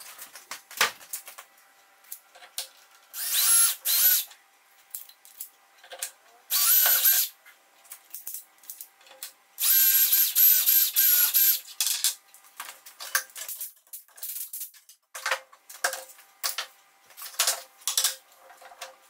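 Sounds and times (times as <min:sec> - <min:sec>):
cordless drill drilling: 0:03.1 - 0:04.3, 0:06.5 - 0:07.3, 0:09.6 - 0:11.6.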